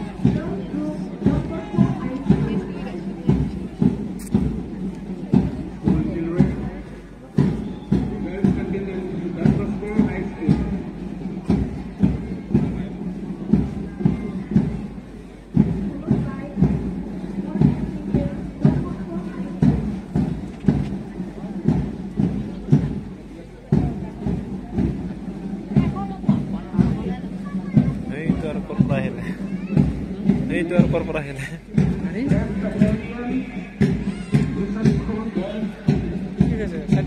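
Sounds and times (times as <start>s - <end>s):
parade march music: 0.0s - 37.0s
steady drum beat: 0.0s - 37.0s.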